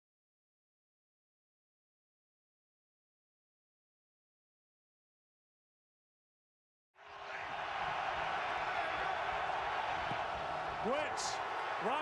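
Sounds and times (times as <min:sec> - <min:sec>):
stadium crowd noise: 0:07.0 - 0:12.0.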